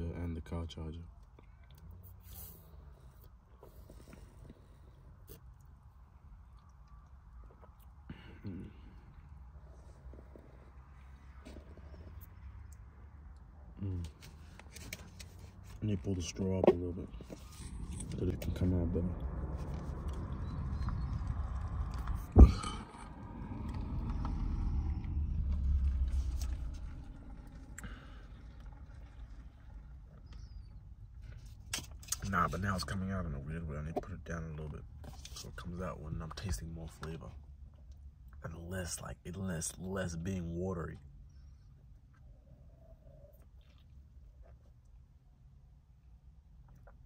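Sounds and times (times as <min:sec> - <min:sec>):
vehicle low rumble: 0:00.0 - 0:47.0.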